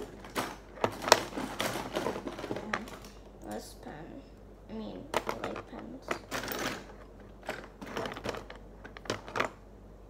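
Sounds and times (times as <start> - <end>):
pens and markers clattering: 0.0 - 3.2, 5.1 - 9.6.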